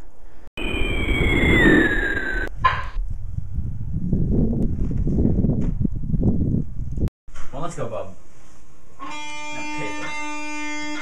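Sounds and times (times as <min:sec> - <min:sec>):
cartoon falling whistle: 0:00.6 - 0:02.5
wind rumbling on microphone: 0:00.6 - 0:07.1.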